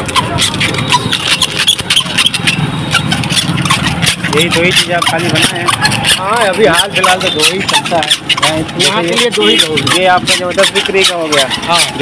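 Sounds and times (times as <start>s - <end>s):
scattered clicks: 0.0s - 12.0s.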